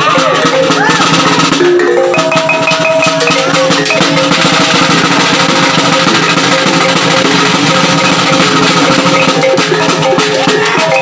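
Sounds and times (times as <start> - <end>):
fast drum beat: 0.0 - 11.0
gongs ringing: 0.2 - 11.0.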